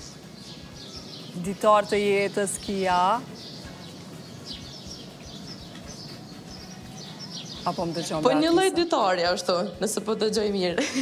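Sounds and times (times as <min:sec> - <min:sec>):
low outdoor background noise: 0:00.0 - 0:11.0
small birds chirping: 0:00.0 - 0:11.0.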